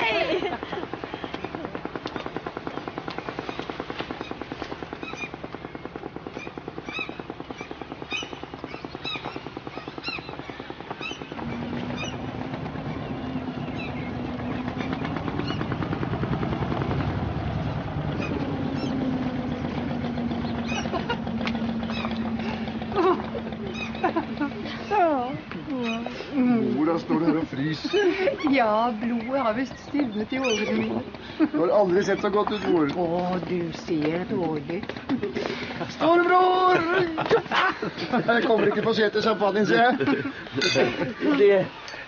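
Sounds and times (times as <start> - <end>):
motorboat engine putt-putt: 0.0 - 41.3
steady low hum: 0.0 - 41.3.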